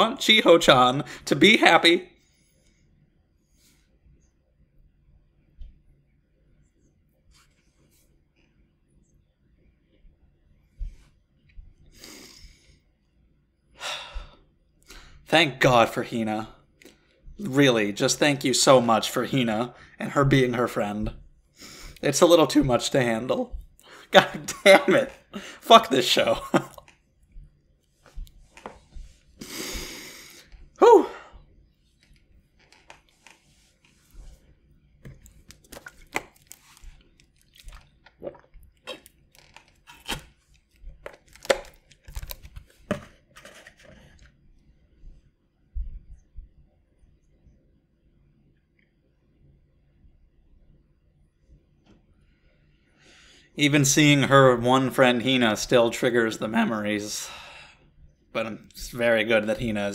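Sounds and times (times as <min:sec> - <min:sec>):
man sighing: 0:13.8 - 0:15.0, 0:29.4 - 0:31.4
plastic water bottle crackling: 0:35.0 - 0:44.4.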